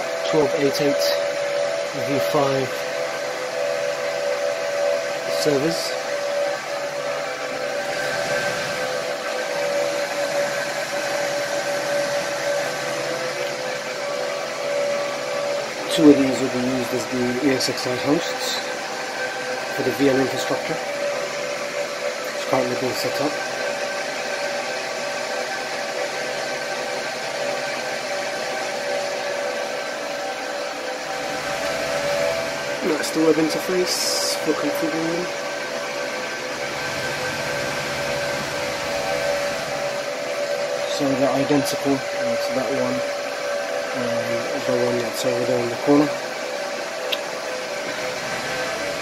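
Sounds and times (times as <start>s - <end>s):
server cooling fans whining: 0.0s - 49.0s.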